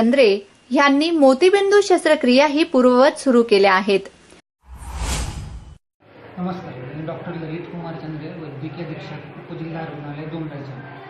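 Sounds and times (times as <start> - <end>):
low rushing whoosh: 4.6 - 5.8.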